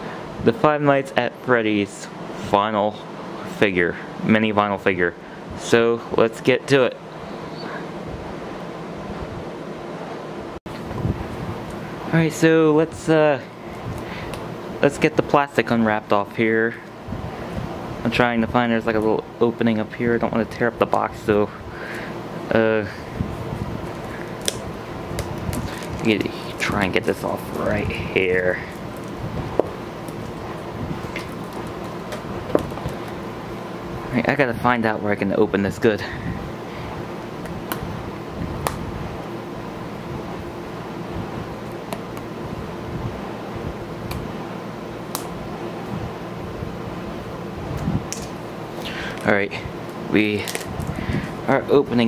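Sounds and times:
steady background hum: 0.0s - 52.0s
plastic wrap crinkling: 23.8s - 27.9s, 30.1s - 33.2s.

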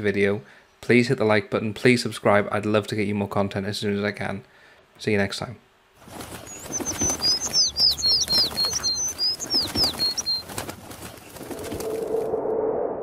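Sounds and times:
cartoon bird tweeting: 6.5s - 10.4s
low swelling sound: 11.5s - 13.0s.

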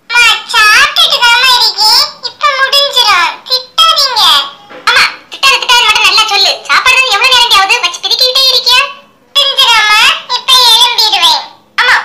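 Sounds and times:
high-pitched cartoon voice talking: 0.1s - 12.0s.

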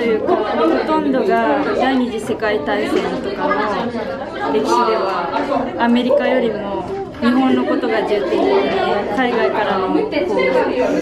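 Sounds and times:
girl talking: 0.0s - 11.0s
students chattering: 0.0s - 11.0s.

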